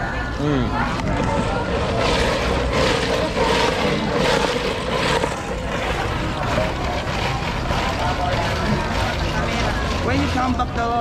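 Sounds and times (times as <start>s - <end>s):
market bustle: 0.0s - 11.0s.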